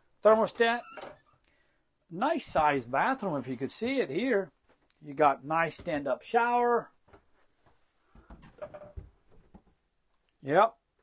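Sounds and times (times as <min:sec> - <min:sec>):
handling knocks and rustling: 0:07.0 - 0:09.8.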